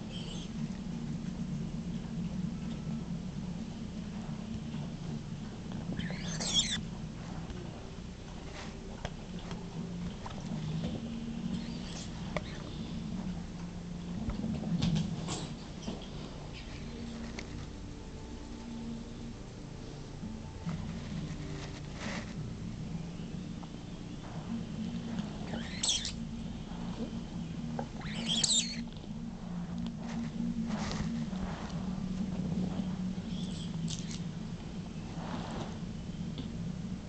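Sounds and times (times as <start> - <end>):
steady low hum: 0.0 - 37.0
dog whining: 6.0 - 6.8.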